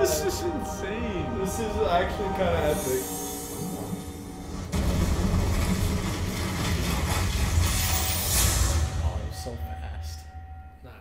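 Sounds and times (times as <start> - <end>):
deep rumbling mystical whirring: 0.0 - 9.7
music: 0.0 - 11.0.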